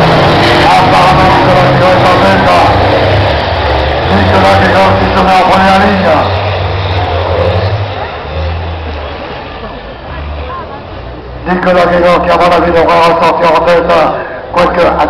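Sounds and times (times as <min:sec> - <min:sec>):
loudspeaker announcer voice: 0:00.0 - 0:02.9, 0:04.0 - 0:06.4, 0:11.4 - 0:15.0
race truck engines passing: 0:00.0 - 0:15.0.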